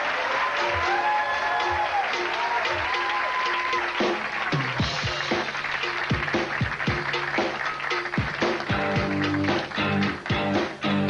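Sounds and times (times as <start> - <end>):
audience applause: 0.0 - 10.9.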